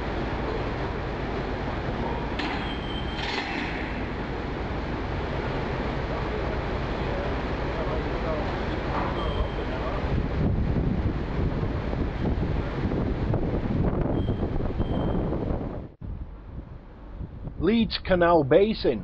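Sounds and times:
construction machinery running: 0.0 - 15.2
short high beeps: 2.6 - 3.3, 9.2 - 9.8, 14.1 - 15.3.

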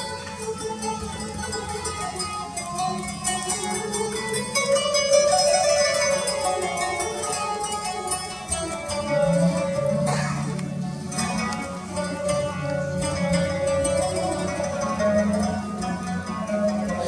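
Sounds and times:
plucked zither and oud playing: 0.0 - 17.0.

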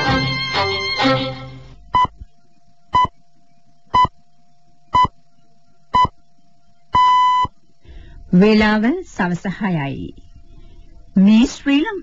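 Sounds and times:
music: 0.0 - 1.8
time signal pips: 1.8 - 2.3, 2.9 - 3.2, 3.9 - 4.2, 4.9 - 5.1, 6.0 - 6.2, 6.9 - 7.6.

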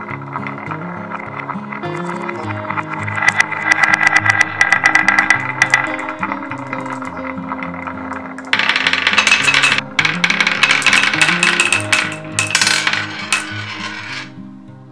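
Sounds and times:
marbles clacking on wooden slope: 0.0 - 14.4
marbles rattling down wooden ramp: 0.0 - 14.4.

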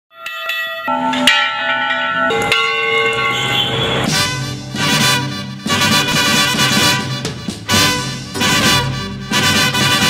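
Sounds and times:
bells ringing: 0.1 - 4.8.

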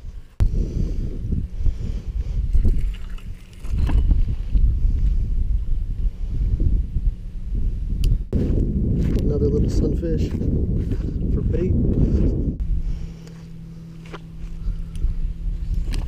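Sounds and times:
wind buffeting microphone: 0.0 - 16.0.

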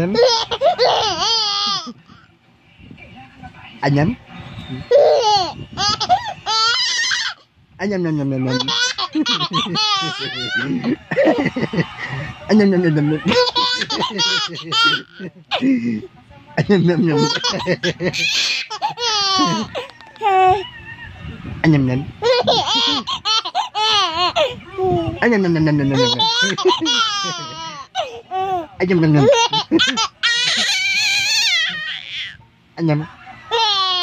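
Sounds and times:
baby laughing: 0.0 - 2.3, 4.9 - 7.4, 8.4 - 11.8, 12.9 - 15.7, 16.6 - 20.7, 22.2 - 25.0, 25.8 - 32.4, 33.5 - 34.0.

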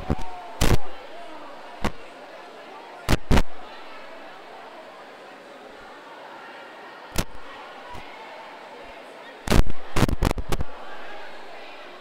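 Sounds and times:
crowd murmuring in echoing room: 0.0 - 12.0.

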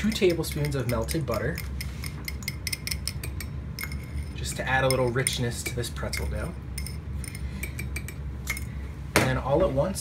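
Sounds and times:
clinks against metal bowl: 0.0 - 8.8
steady low hum: 0.0 - 10.0.

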